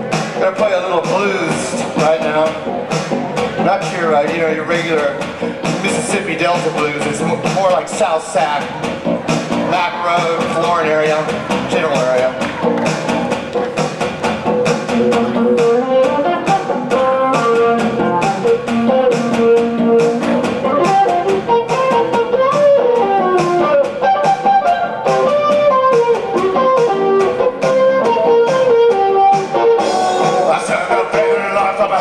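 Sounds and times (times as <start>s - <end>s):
tapped string instrument blues: 0.3s - 32.0s.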